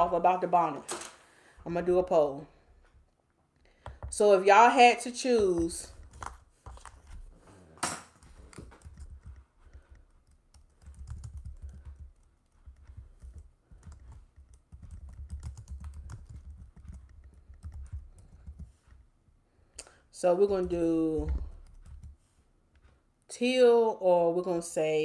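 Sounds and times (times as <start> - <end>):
typing on keyboard: 8.2 - 18.8, 20.4 - 22.2.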